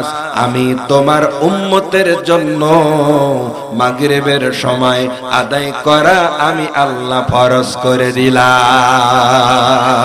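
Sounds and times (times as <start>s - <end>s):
man chanting over loudspeaker: 0.0s - 10.0s.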